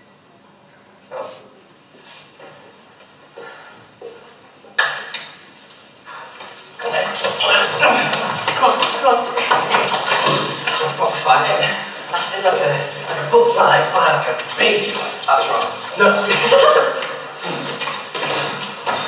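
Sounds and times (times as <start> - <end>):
voices: 6.1 - 19.0
quick hits and clatter: 6.4 - 19.0.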